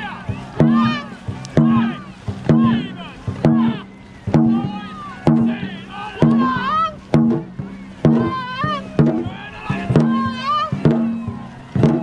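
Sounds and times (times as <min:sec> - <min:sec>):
drum beats: 0:00.0 - 0:12.0
person shouting: 0:06.0 - 0:07.0.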